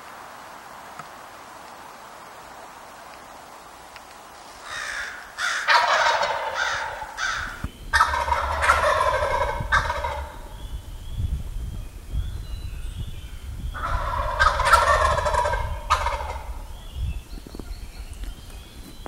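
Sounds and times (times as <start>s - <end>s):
turkey gobbling: 4.6s - 10.6s, 13.8s - 16.7s.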